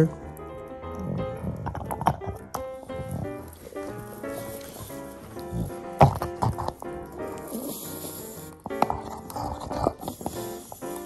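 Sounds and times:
background music: 0.0s - 11.0s
dog gnawing and snuffling: 0.0s - 11.0s.

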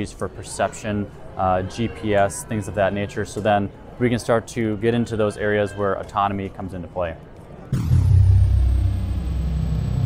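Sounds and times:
deep cinematic rumble: 7.8s - 10.0s.

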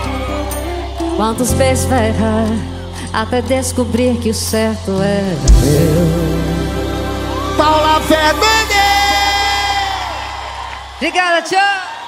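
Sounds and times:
crowd cheering: 0.0s - 4.5s, 5.4s - 12.0s.

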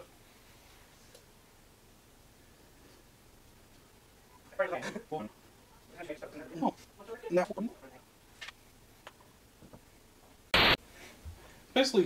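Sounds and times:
burst of harsh static noise: 10.5s - 10.8s.

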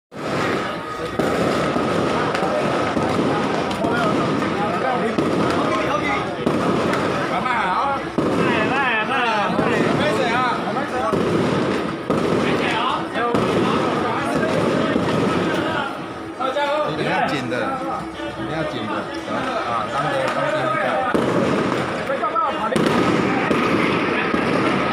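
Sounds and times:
crowd voices: 0.1s - 24.9s
firecrackers crackling: 0.1s - 24.9s.

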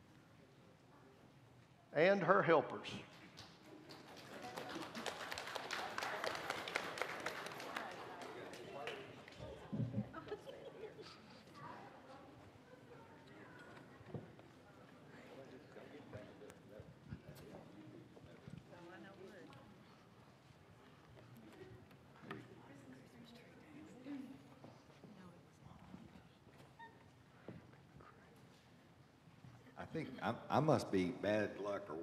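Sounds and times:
children's footsteps and shuffling: 16.8s - 29.6s.

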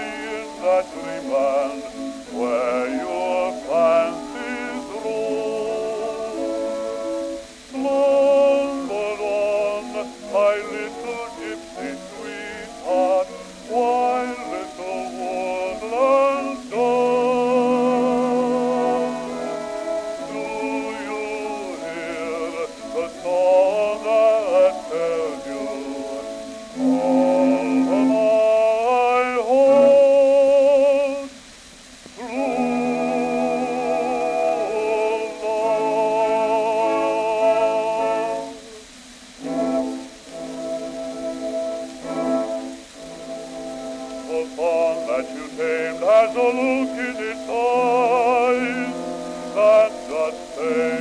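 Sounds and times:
brass-led orchestra chords: 0.0s - 30.4s, 32.2s - 51.0s
bass voice singing with vibrato: 0.0s - 31.4s, 32.1s - 51.0s
record surface hiss: 0.0s - 51.0s.

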